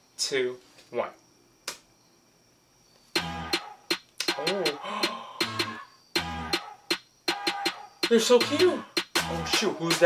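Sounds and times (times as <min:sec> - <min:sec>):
pop track with crisp beat: 0:03.2 - 0:10.0.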